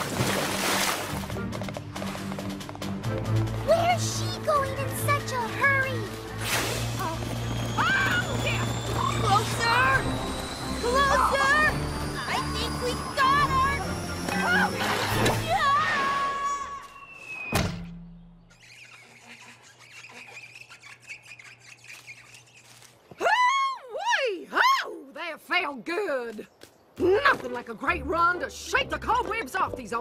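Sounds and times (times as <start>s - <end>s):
cartoon background music: 1.0s - 16.7s.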